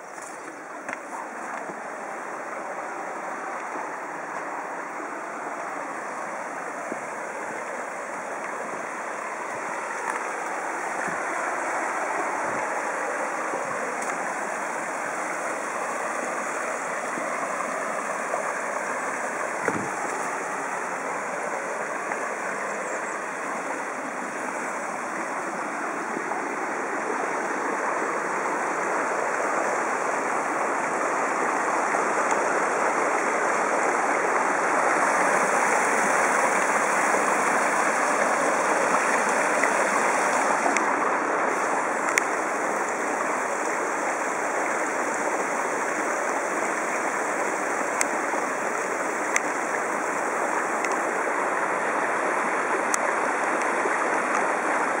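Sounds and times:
stream rushing over stones: 0.0 - 55.0.

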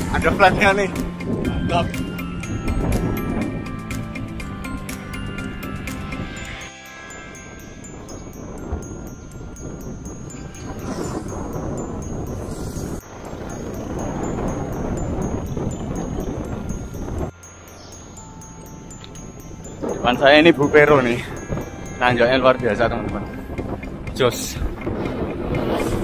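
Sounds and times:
background music: 0.0 - 12.3, 13.4 - 26.0
wind buffeting microphone: 0.0 - 26.0.

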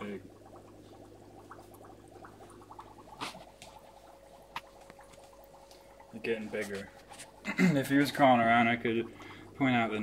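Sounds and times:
aquarium equipment humming: 0.0 - 10.0.

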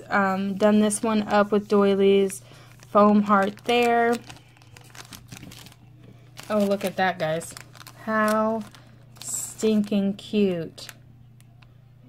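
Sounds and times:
cellophane bag crinkling: 0.8 - 11.0.

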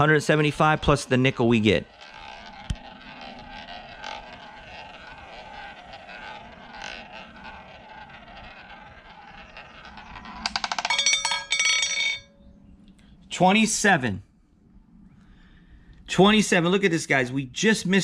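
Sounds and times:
roulette ball clattering: 0.0 - 12.4
roulette ball rolling: 0.0 - 12.6.

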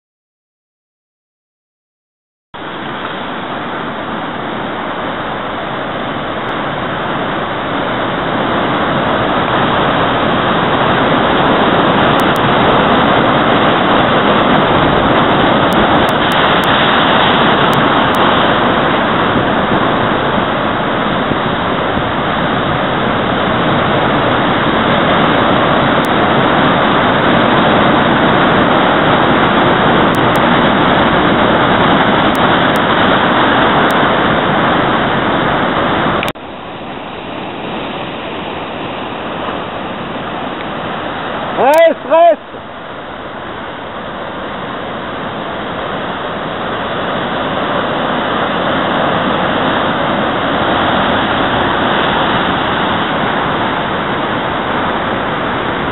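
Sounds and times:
ocean surf breaking over rock: 2.6 - 55.9.

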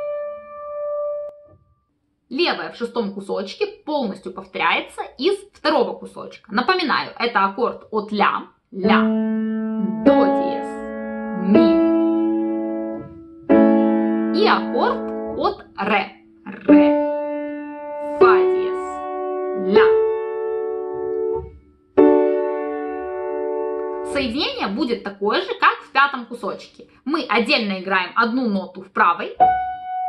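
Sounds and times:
piano notes and chord: 0.0 - 1.6, 8.8 - 24.9, 29.4 - 30.0
person speaking note names: 8.8 - 9.2, 14.4 - 16.7, 19.6 - 20.0.

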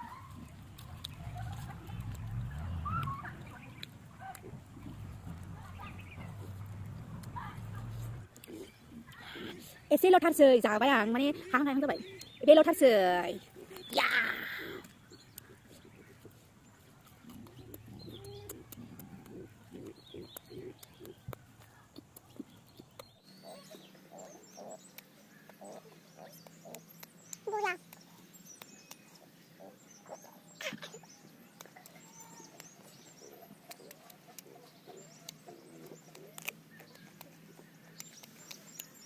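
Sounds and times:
bird calls: 0.0 - 9.8, 10.9 - 39.0
small clicks: 35.2 - 37.4.

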